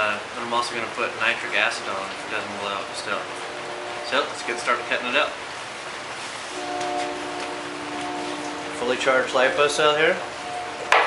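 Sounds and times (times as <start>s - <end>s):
train horn chord: 2.2s - 11.0s.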